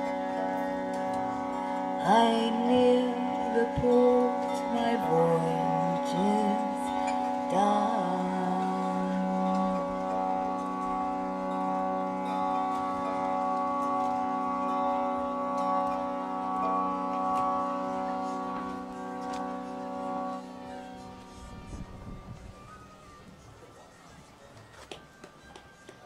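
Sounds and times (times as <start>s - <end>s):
harmonium drone chord: 0.0s - 23.7s
woman singing: 2.0s - 10.0s.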